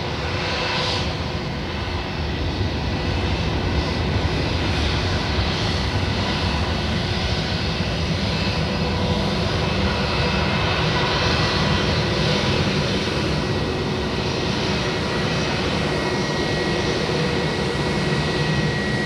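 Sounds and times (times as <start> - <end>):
jet engines taxiing rumble: 0.0 - 19.0.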